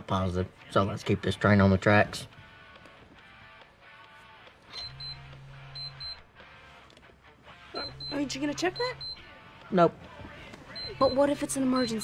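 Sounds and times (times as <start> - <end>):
soft background music: 0.0 - 12.0
pager short high beeps: 4.7 - 6.2
pager vibrating buzz: 4.8 - 6.6.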